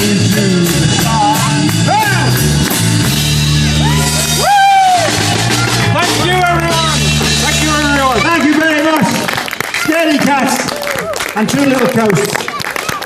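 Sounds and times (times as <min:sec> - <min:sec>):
voices singing along: 0:00.0 - 0:02.6
folk-rock band playing: 0:00.0 - 0:10.3.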